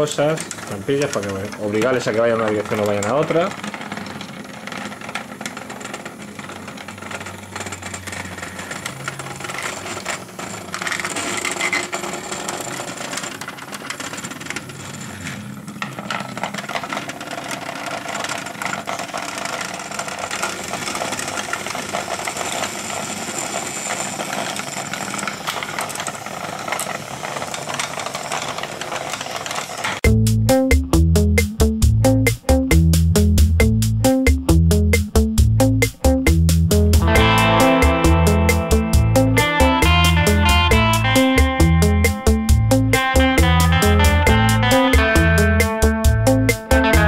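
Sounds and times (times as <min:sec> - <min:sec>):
plastic legs rattling: 0:00.0 - 0:23.1
loud music: 0:30.0 - 0:47.0.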